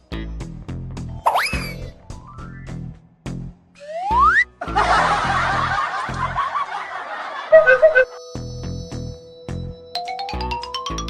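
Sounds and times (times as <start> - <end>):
rising whistle: 3.8 - 4.5, 7.5 - 8.2
group laughing: 4.6 - 8.1.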